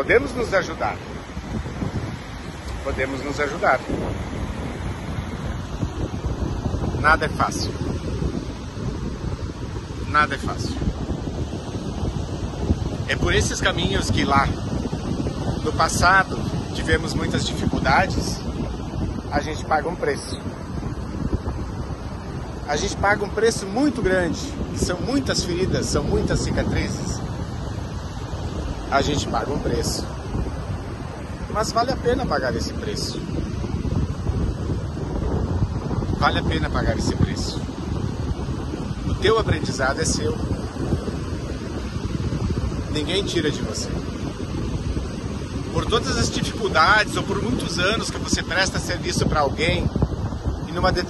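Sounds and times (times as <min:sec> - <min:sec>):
wind buffeting microphone: 0:00.0 - 0:51.0.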